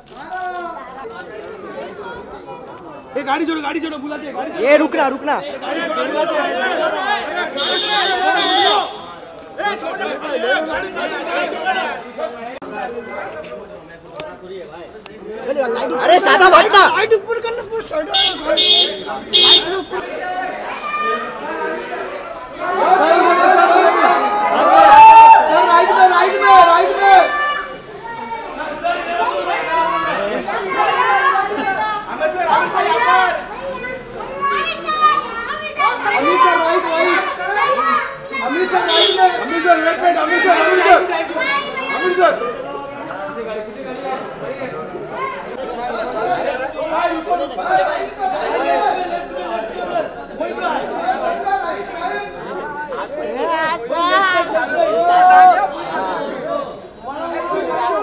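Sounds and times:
voices talking and calling out: 0.0 - 58.0
long drawn-out call: 18.2 - 20.0.

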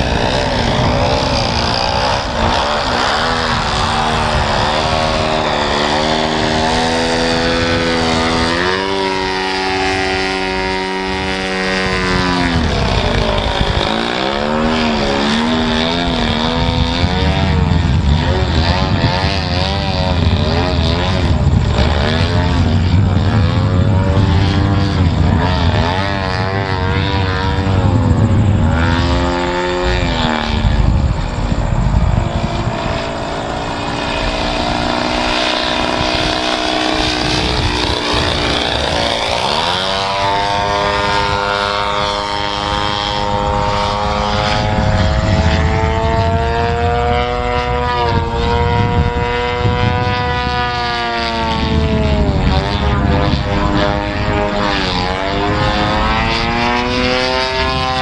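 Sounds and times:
model airplane propeller engine droning: 0.0 - 58.0.

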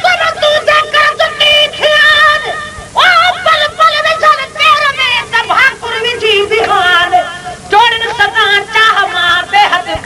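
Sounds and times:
high-pitched voice singing: 0.0 - 10.0.

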